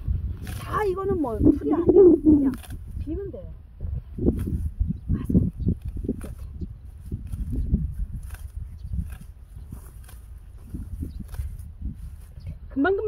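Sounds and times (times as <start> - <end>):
stalks rustling and snapping: 0.4 - 0.9, 2.4 - 2.8, 5.7 - 11.7
sickle cutting stems: 0.4 - 3.3, 4.2 - 12.4.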